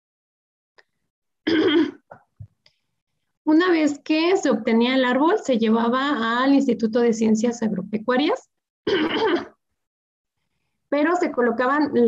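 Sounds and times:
woman clearing her throat: 0:01.5 - 0:02.3, 0:08.9 - 0:09.6.

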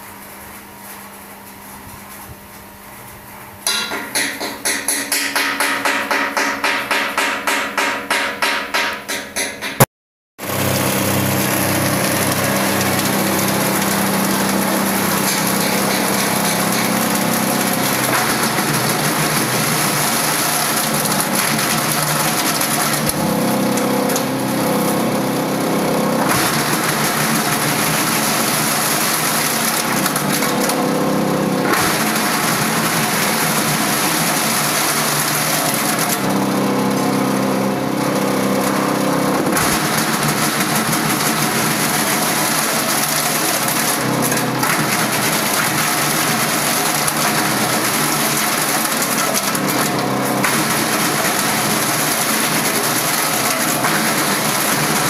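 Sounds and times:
motor hum: 0:10.4 - 0:55.0
shredder grinding rubber: 0:10.4 - 0:55.0.

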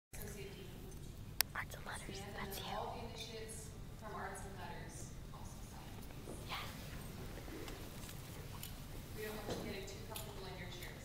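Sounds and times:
low room noise: 0:00.2 - 0:11.0
person whispering: 0:01.4 - 0:02.9.

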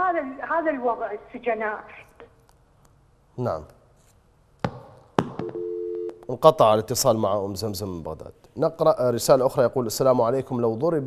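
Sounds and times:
telephone busy tone: 0:05.4 - 0:06.2.

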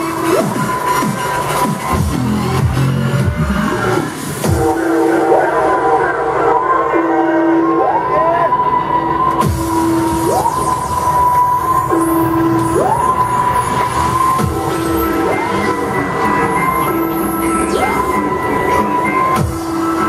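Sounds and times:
techno kick drum: 0:00.4 - 0:03.6, 0:04.5 - 0:04.8, 0:14.4 - 0:14.7, 0:19.4 - 0:19.8
siren-like synth tone: 0:04.5 - 0:20.0.

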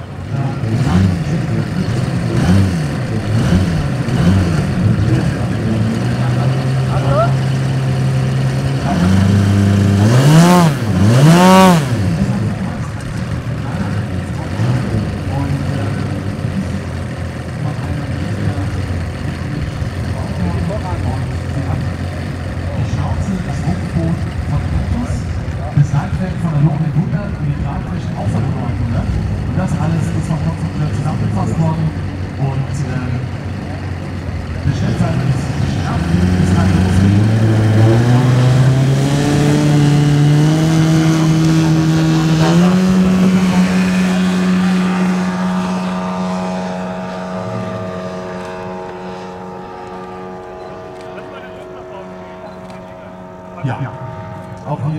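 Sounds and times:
model plane engine revving: 0:00.0 - 0:25.7, 0:29.1 - 0:54.6.

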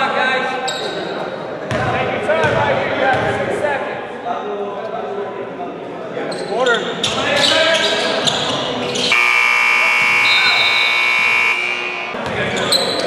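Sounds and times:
players' voices: 0:00.0 - 0:13.0
shoe squeak: 0:06.3 - 0:09.2, 0:10.0 - 0:11.3, 0:12.2 - 0:13.0
electric buzzer: 0:09.1 - 0:12.2.

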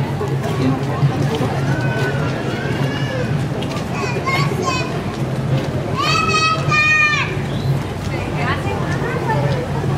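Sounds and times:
street crowd noise: 0:00.0 - 0:09.9
children shouting: 0:01.5 - 0:05.1, 0:05.9 - 0:07.5.

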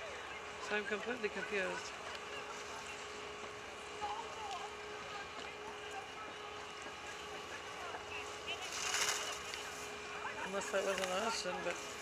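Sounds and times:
faint steady hum: 0:00.0 - 0:12.0
faint voices: 0:00.0 - 0:12.0.

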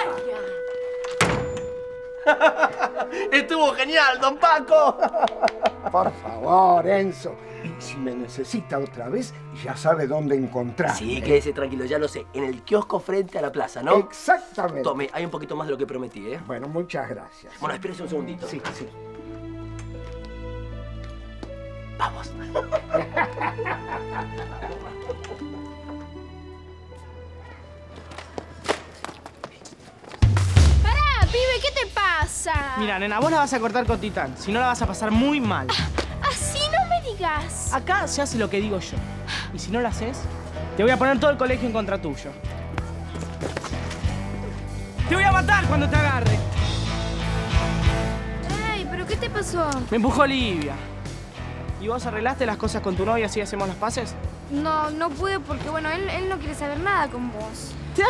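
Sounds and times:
door slamming: 0:01.0 - 0:01.9
running footsteps on pavement: 0:19.0 - 0:21.7, 0:27.8 - 0:31.2, 0:42.4 - 0:45.1.

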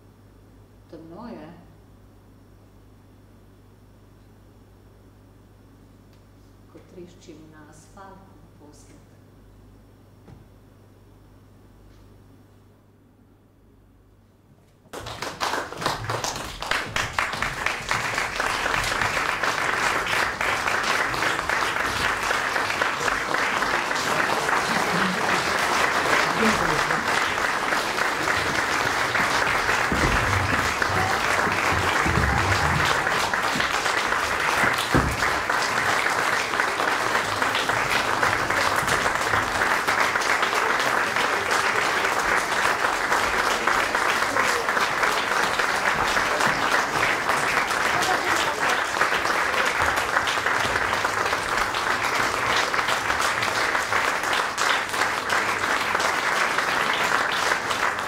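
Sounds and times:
audience applauding: 0:14.9 - 0:58.0.

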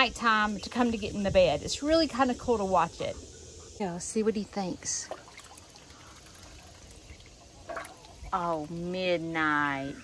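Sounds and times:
water lapping and sloshing: 0:04.6 - 0:09.2.

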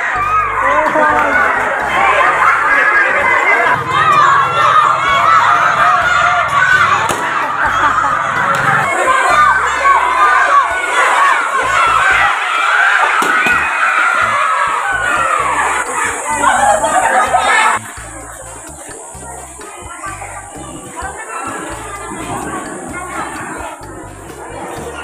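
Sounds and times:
children shouting and cheering: 0:00.0 - 0:25.0.

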